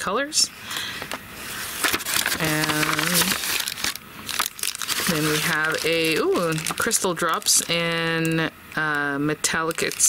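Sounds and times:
plastic packaging crinkling: 1.6s - 10.0s.

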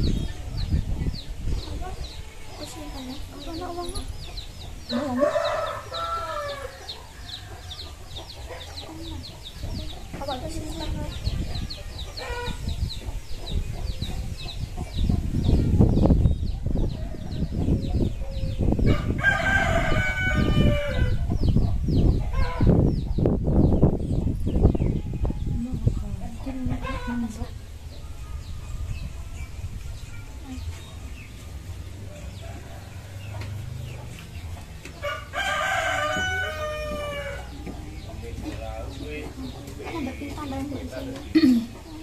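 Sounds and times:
rooster crowing: 4.9s - 7.4s, 18.9s - 21.2s, 35.0s - 37.6s.

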